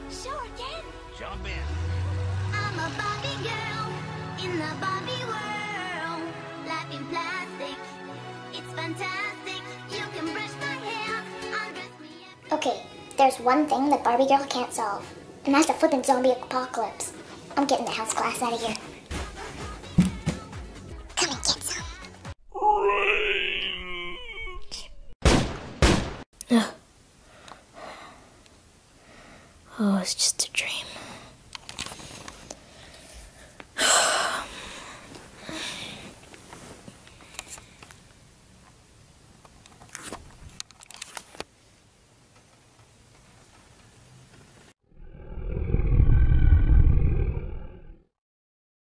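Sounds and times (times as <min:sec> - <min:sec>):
long deep roar: 0:01.6 - 0:04.4, 0:44.9 - 0:48.0
wailing moan: 0:22.5 - 0:25.1
loud thumps: 0:25.2 - 0:26.2.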